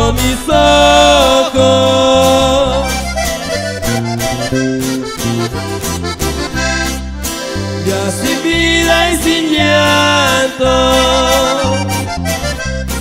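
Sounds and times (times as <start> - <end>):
accordion melody: 0.0 - 13.0
bass line: 0.0 - 13.0
strummed guitar: 0.0 - 13.0.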